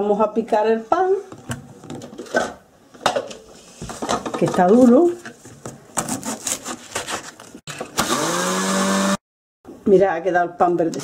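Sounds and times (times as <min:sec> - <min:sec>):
food chopper motor running: 0:08.0 - 0:09.2.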